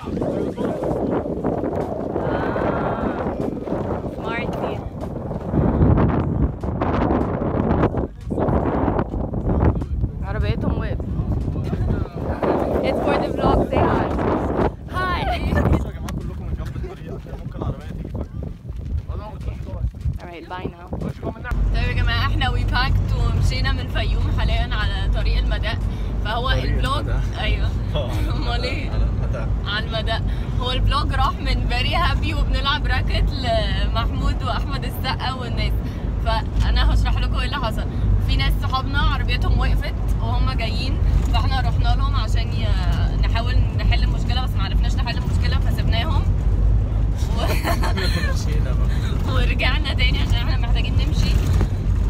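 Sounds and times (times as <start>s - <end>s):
car interior rumble: 0.0s - 52.0s
people's voices: 0.0s - 52.0s
strong wind buffeting microphone: 0.0s - 52.0s.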